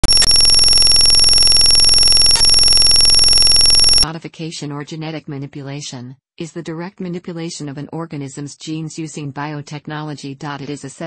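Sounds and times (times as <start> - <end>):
loud buzzy electronic tone: 0.0 - 4.0.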